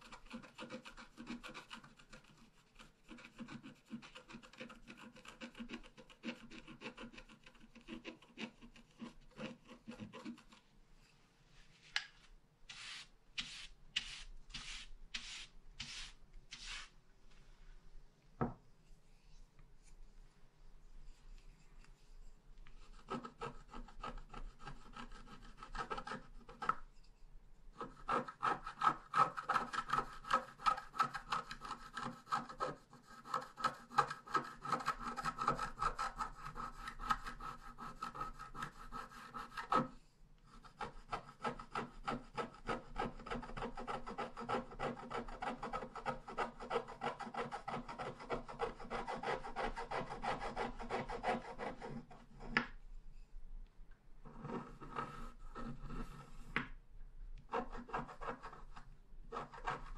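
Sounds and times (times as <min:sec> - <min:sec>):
stylus scratching paper: 0:00.0 - 0:10.7, 0:12.7 - 0:16.9, 0:22.8 - 0:26.8, 0:27.8 - 0:39.9, 0:40.5 - 0:52.6, 0:54.3 - 0:56.6, 0:57.5 - 0:59.9.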